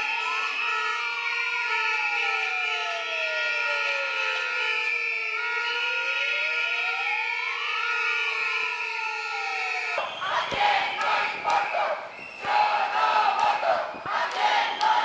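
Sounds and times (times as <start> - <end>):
siren wailing: 0.0 - 15.0
shrill whistles blowing: 10.0 - 15.0.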